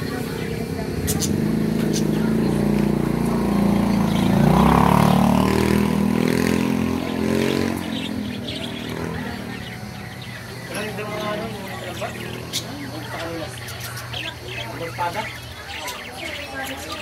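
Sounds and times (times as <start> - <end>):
vehicle engine passing by: 0.0 - 16.0.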